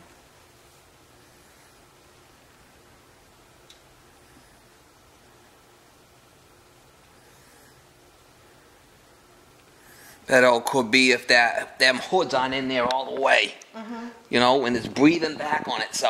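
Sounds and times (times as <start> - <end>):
gas fireplace burner hissing: 0.0 - 16.0
small tick: 3.6 - 3.9.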